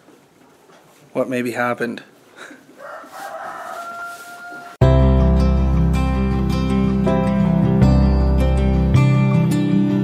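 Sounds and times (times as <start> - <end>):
rooster crowing: 2.8 - 4.8.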